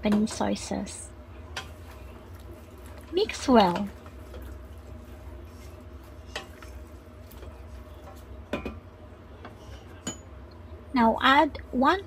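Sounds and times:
steady low hum: 0.0s - 12.0s
spoon stirring food in pot: 1.4s - 8.8s.

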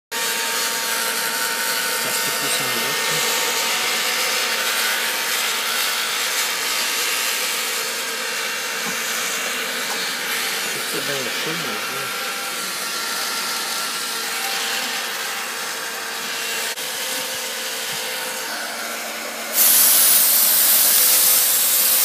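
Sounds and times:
hair dryer blowing: 0.4s - 22.0s.

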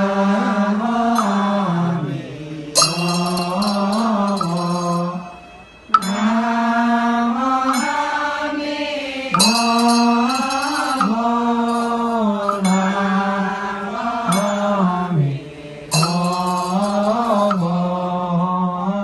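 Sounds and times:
metal hand chime ringing: 1.2s - 1.7s, 2.8s - 8.2s, 9.3s - 15.1s, 15.9s - 17.9s.

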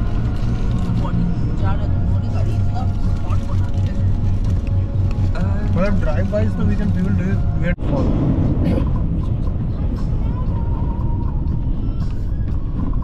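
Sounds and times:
car driving rumble in cabin: 0.0s - 13.0s.

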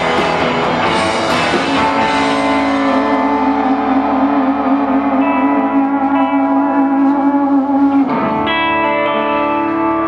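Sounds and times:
electric guitars droning chord: 0.0s - 10.0s.

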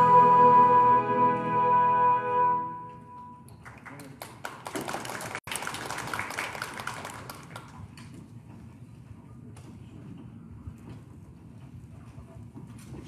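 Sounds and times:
held musical note: 0.0s - 3.5s.

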